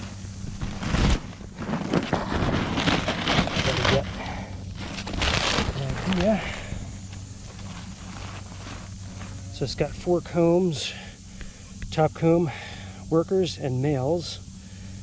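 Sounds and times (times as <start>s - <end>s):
paper nest crackling and rustling: 0.0s - 9.5s.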